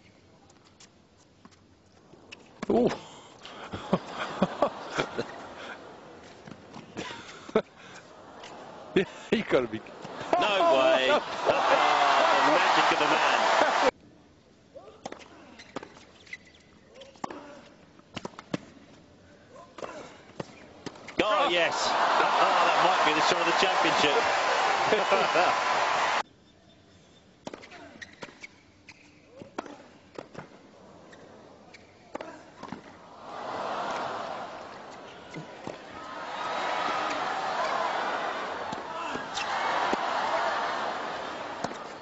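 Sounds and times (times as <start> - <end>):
crowd noise: 3.4 - 13.9, 21.1 - 26.2, 33.0 - 42.0.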